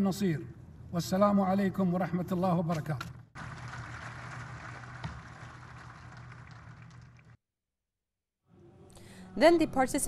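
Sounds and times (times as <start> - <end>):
audience applauding: 3.4 - 7.4.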